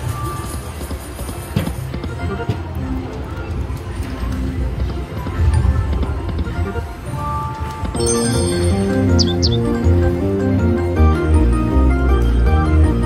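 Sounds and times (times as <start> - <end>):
busy casino background: 0.0 - 13.0
slot machine game music: 6.6 - 13.0.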